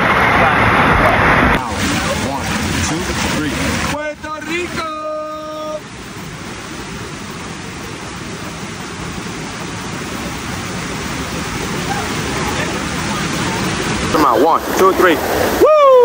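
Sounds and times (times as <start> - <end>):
running water rushing: 0.0 - 16.0.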